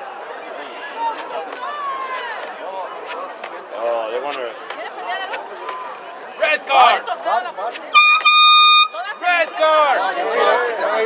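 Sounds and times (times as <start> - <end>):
spectators talking and calling: 0.0 - 11.0
air horn blast: 8.0 - 9.1.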